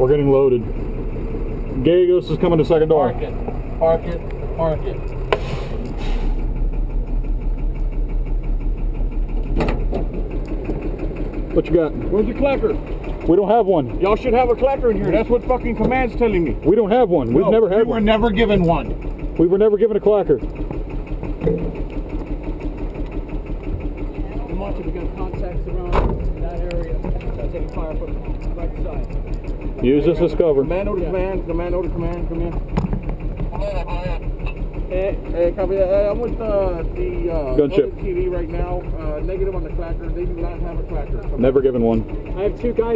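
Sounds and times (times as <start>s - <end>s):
diesel engine idling: 0.0s - 42.9s
short hiss: 5.3s - 6.4s.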